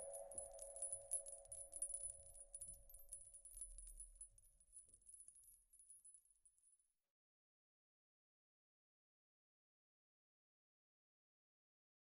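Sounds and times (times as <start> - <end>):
high tinkling clicks: 0.0 - 6.8.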